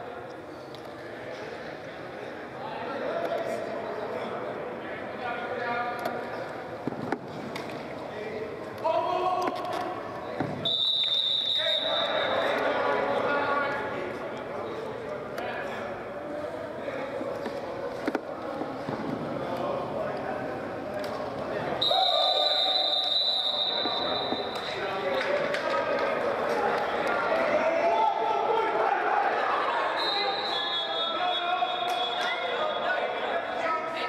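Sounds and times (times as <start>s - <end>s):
players shouting and chatting: 0.0s - 34.0s
referee's whistle blasts: 10.6s - 12.6s, 21.8s - 24.8s, 29.9s - 32.9s.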